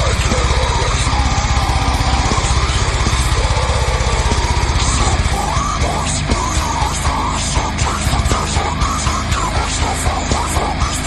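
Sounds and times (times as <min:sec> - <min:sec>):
distorted metal guitars and bass: 0:00.0 - 0:11.0.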